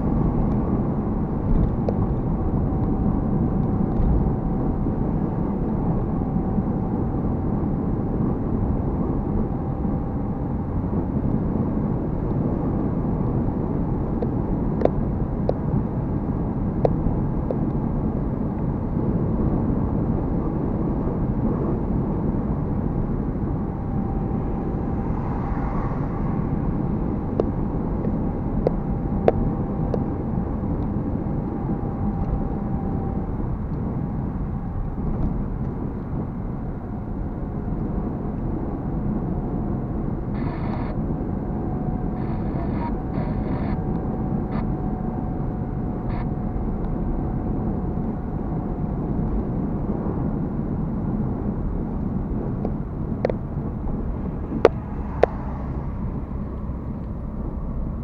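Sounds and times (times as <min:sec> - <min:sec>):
car road and engine noise: 0:00.0 - 0:58.0
faint steady whine: 0:00.0 - 0:58.0.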